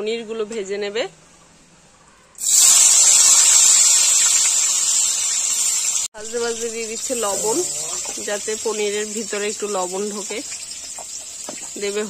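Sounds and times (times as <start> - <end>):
food sizzling in hot oil: 2.4 - 12.0.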